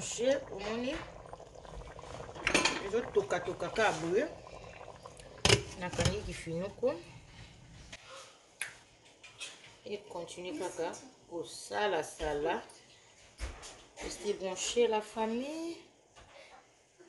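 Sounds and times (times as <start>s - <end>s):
woman talking: 5.7s - 7.1s, 9.9s - 12.7s, 14.0s - 15.8s.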